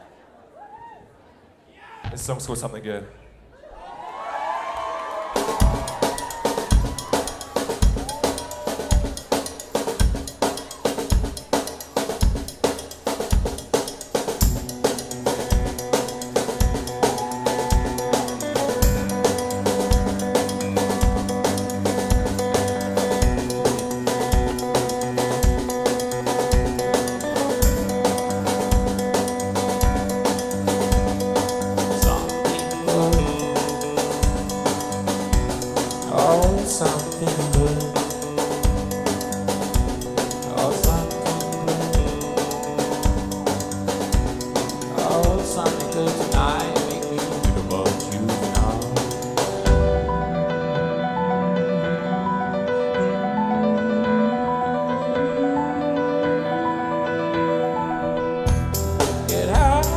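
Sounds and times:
rock band playing: 0:05.2 - 0:54.3, 0:58.4 - 0:59.9
drum-kit beat: 0:05.3 - 0:50.2, 0:58.5 - 0:59.9
low bass line: 0:58.5 - 0:59.9.

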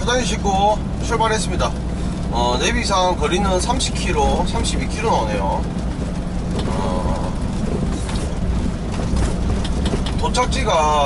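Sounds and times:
man speaking: 0:00.0 - 0:05.7, 0:06.6 - 0:07.5
truck engine drone and road noise: 0:00.0 - 0:11.0.

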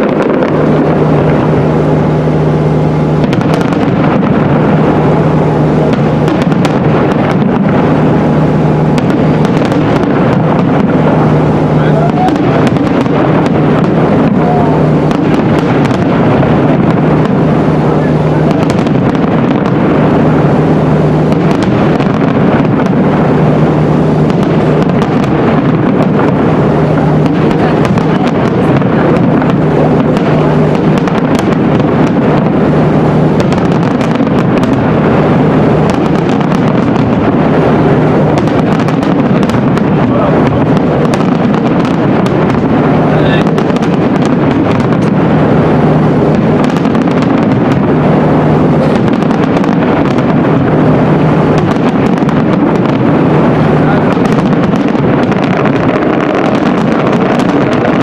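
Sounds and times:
fireworks bursting and crackling: 0:00.0 - 0:58.0.

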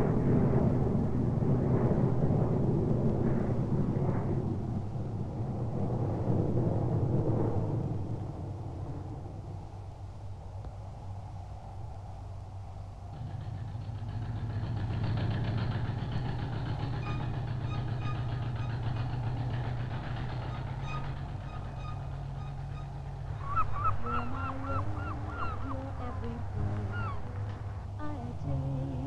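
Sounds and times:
boat engine chugging: 0:13.1 - 0:29.0
gull calling: 0:20.4 - 0:27.5.

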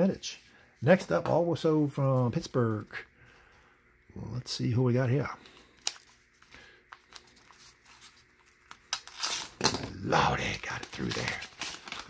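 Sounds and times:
paper tearing: 0:08.7 - 0:09.7, 0:10.7 - 0:12.0.

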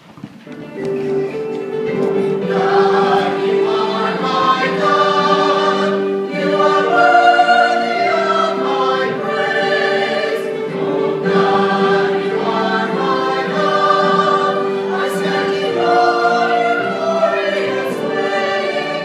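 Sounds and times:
choir singing a hymn: 0:01.0 - 0:19.0.

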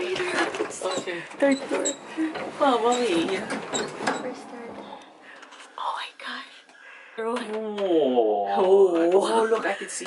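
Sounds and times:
person whispering: 0:05.7 - 0:06.7.

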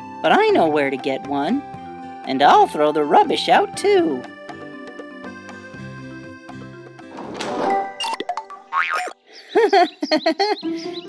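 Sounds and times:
background music: 0:00.0 - 0:11.0
springy boing: 0:08.0 - 0:09.2.

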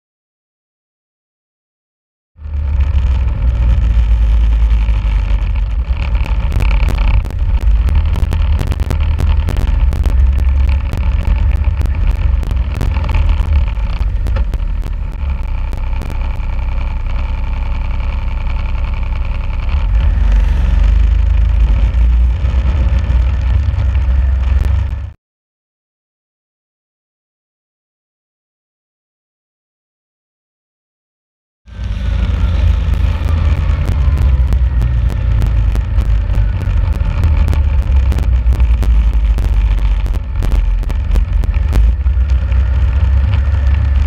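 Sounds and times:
snowmobile engine rumbling: 0:02.4 - 0:25.1, 0:31.8 - 0:44.0
sharp clicks and ticks: 0:02.9 - 0:17.2, 0:21.2 - 0:25.2, 0:32.6 - 0:44.0.

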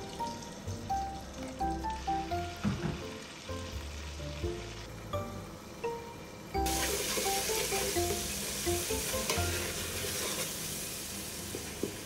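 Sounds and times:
stew sizzling in oil: 0:00.0 - 0:05.0, 0:06.6 - 0:12.0
background music: 0:00.0 - 0:09.9.

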